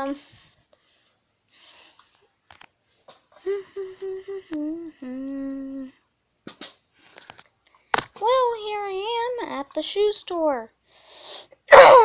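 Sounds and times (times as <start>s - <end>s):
person humming a tune: 3.4s - 6.1s.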